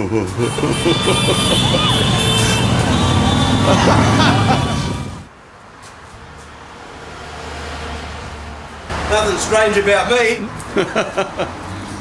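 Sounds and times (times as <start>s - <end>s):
motor vehicle rumble: 0.0s - 6.6s.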